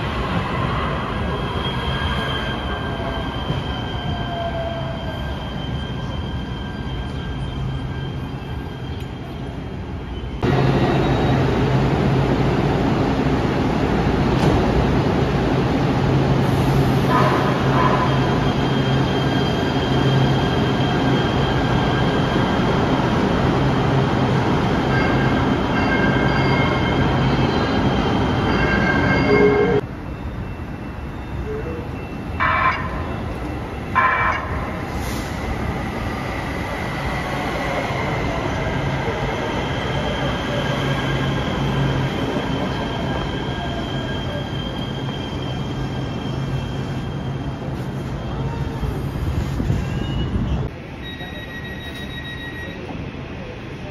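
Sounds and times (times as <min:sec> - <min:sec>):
train braking to a stop: 0:00.0 - 0:11.9, 0:16.2 - 0:53.9.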